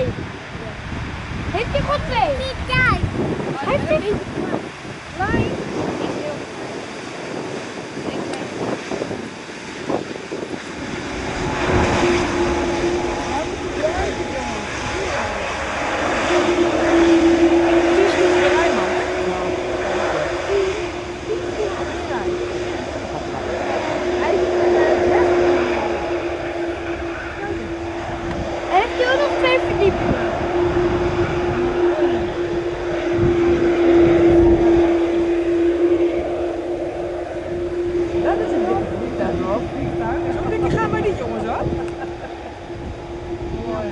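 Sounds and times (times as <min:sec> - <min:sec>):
jet engines reverse thrust: 0:00.0 - 0:43.9.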